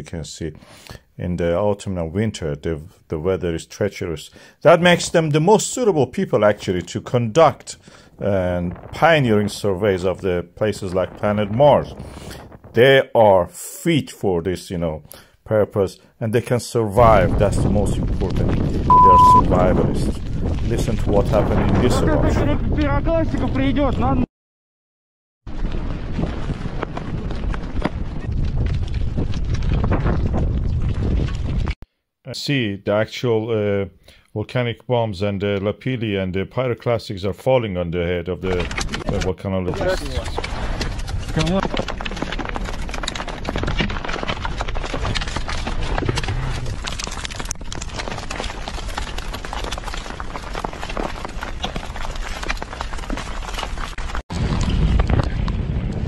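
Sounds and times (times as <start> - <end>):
strong wind buffeting microphone: 10.6 - 12.8, 17.0 - 24.2, 25.5 - 31.8, 54.3 - 56.0
rock fragments ticking and knocking: 17.1 - 18.9, 19.5 - 21.8, 25.5 - 31.7, 39.8 - 56.0
stones clattering on ground and metal: 39.8 - 55.6.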